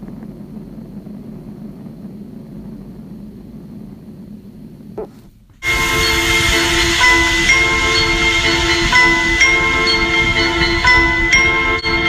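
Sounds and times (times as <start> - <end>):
low rumbling drone: 0.0 - 12.0
sliding tone: 4.8 - 12.0.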